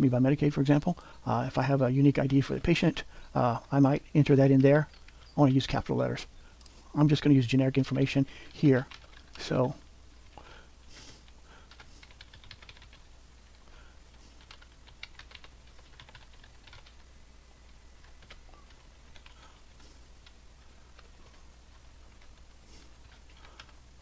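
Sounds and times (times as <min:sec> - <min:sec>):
typing on computer keyboard: 0:08.8 - 0:09.4, 0:11.7 - 0:13.1, 0:14.3 - 0:17.1, 0:18.0 - 0:23.8.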